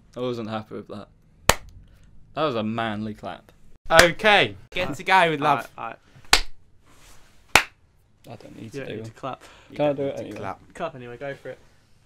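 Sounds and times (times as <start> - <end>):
sharp hand claps: 1.5 - 1.7, 3.9 - 4.2, 6.3 - 6.6, 7.5 - 7.8.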